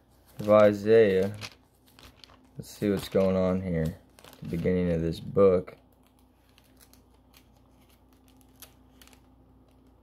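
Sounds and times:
thin pages rustling and ticking: 0:00.0 - 0:10.0.

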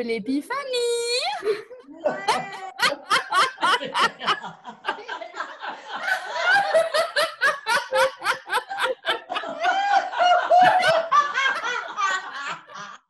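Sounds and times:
women laughing in rhythmic bursts: 0:01.4 - 0:13.0.

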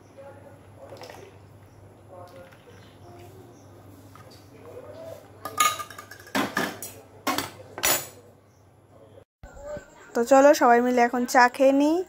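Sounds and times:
cutlery and dishes clinking: 0:05.4 - 0:08.2.

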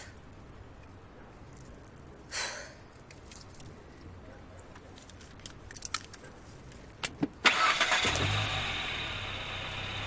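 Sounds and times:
car engine starting and running: 0:07.4 - 0:10.0.

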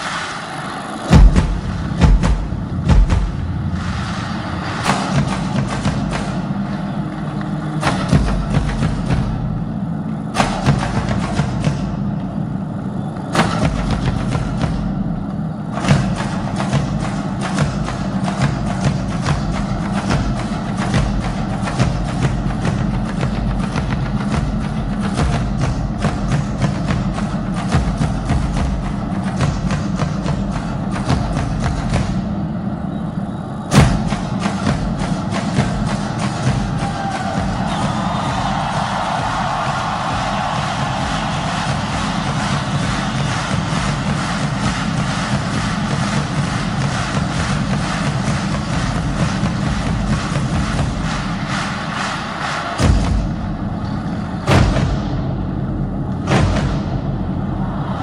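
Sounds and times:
bass drum beating: 0:01.1 - 0:06.8, 0:07.8 - 0:09.6, 0:33.7 - 0:52.1, 0:52.8 - 0:58.0.

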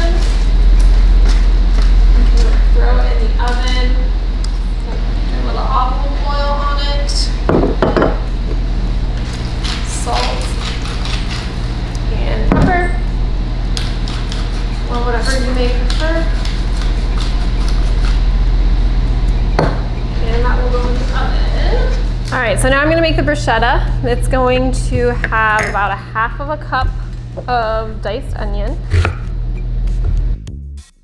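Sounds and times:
steady low hum: 0:00.0 - 0:30.5.

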